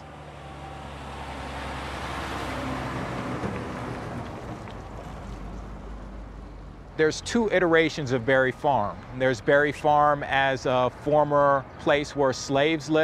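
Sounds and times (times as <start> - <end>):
vehicle passing: 0.0 - 13.0.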